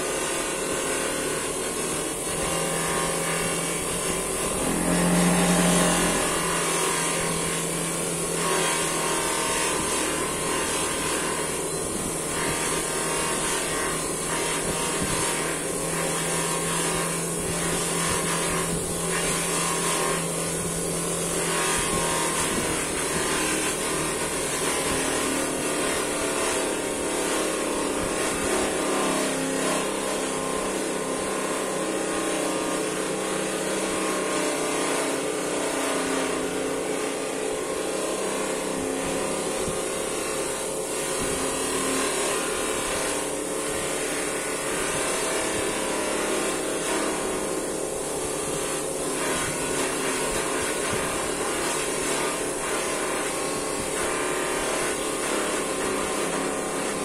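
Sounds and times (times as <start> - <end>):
bench polisher motor running: 0.0 - 57.0.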